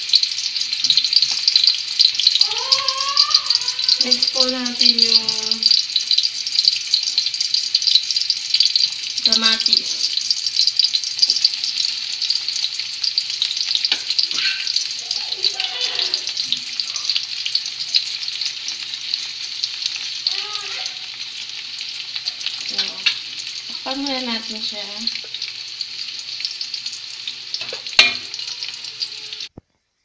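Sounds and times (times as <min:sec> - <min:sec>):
vegetables sizzling in hot oil: 0:00.0 - 0:29.6.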